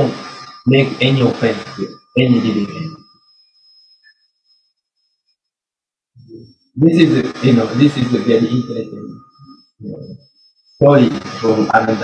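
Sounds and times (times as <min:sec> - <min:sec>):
thin high-pitched tone: 0:00.0 - 0:05.4, 0:06.2 - 0:12.0.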